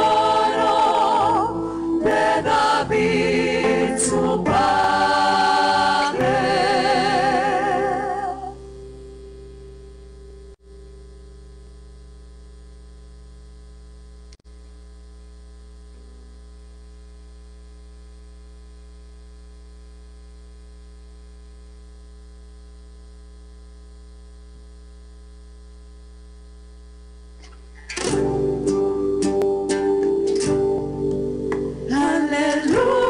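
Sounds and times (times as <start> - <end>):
electrical mains hum: 0.0 - 33.0.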